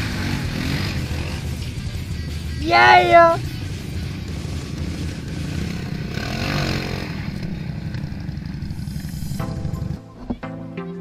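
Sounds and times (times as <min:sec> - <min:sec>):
atv engine revving: 0:00.0 - 0:10.0
background music: 0:00.0 - 0:11.0.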